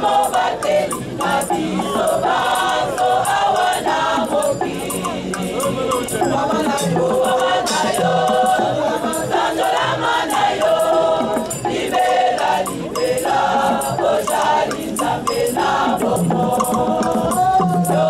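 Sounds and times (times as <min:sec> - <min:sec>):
rattle beat: 0:00.0 - 0:18.0
women singing in choir: 0:00.0 - 0:18.0.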